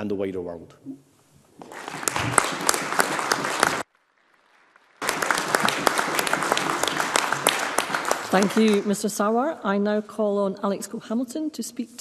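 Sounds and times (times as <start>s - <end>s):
crowd applauding: 1.6s - 9.3s.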